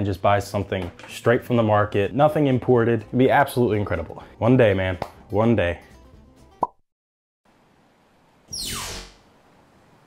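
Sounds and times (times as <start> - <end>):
faint steady hiss: 7.5 - 10.0.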